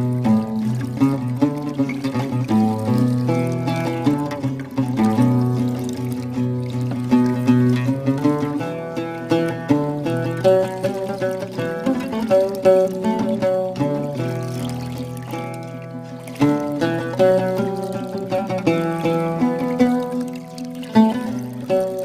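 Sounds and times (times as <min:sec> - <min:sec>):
plucked string melody: 0:00.0 - 0:22.0.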